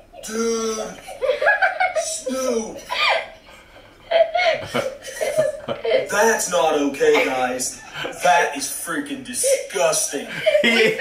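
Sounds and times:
man laughing: 0:00.2 - 0:03.2, 0:04.1 - 0:08.6, 0:09.2 - 0:11.0.

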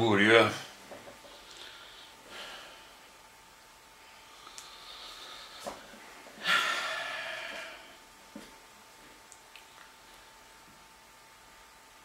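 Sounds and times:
man's breathy exhale: 0:06.4 - 0:08.0.

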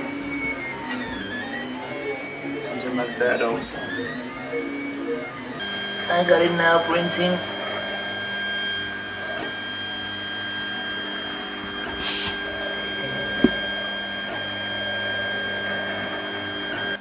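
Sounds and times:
printer motors and fan whirring: 0:00.0 - 0:17.0
brief hiss: 0:12.0 - 0:12.4.

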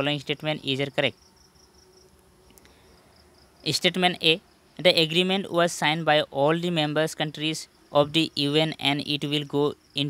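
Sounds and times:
high-pitched insect chirring: 0:00.0 - 0:10.0.

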